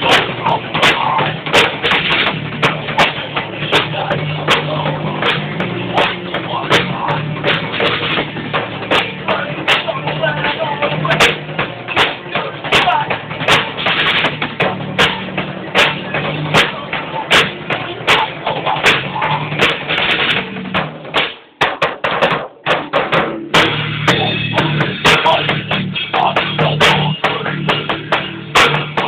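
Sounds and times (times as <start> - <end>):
bass and guitar: 0.0 - 21.6, 22.6 - 29.0
drum kit steady beat: 0.0 - 29.0.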